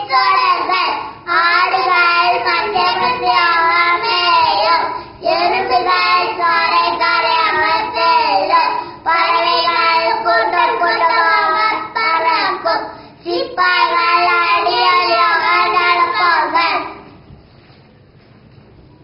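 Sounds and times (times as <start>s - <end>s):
boys singing in unison: 0.0s - 17.0s.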